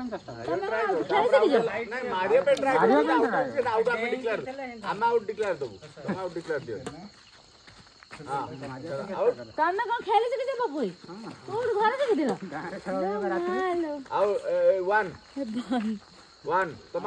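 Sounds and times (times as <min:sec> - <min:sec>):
crickets trilling: 0:00.0 - 0:17.0
people calling out and talking: 0:00.0 - 0:17.0.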